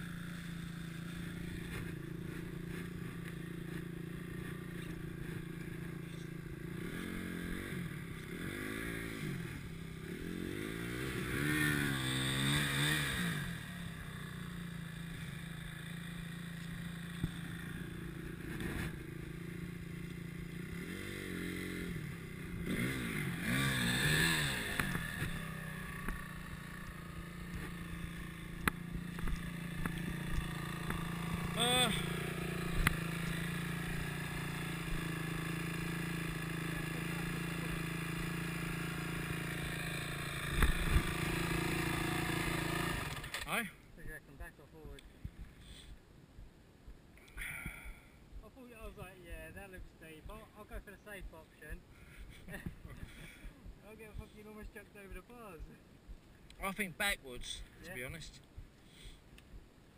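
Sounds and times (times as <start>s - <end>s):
dirt bike revving: 0.0s - 43.8s, 44.9s - 57.0s
dirt bike engine idling: 0.0s - 59.9s.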